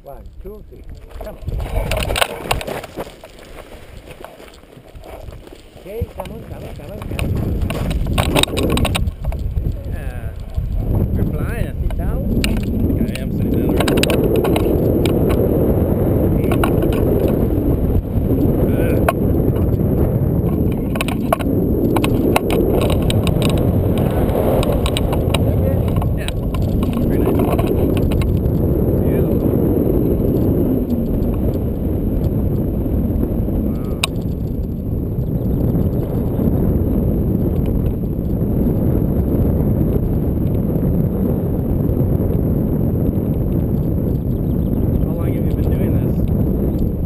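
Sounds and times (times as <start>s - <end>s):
wind buffeting microphone: 0.0s - 47.0s
clicks and rattles from harness: 0.9s - 9.8s, 11.9s - 15.4s, 16.4s - 17.5s, 20.4s - 28.4s, 33.9s - 34.6s.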